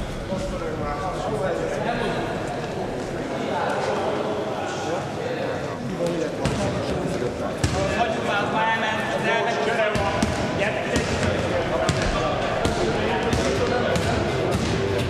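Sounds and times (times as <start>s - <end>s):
voices chattering in a hall: 0.0s - 15.0s.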